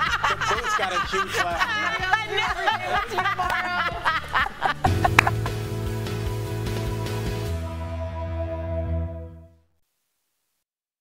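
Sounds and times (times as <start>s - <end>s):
people laughing and giggling: 0.0s - 5.8s
background music: 0.0s - 9.6s.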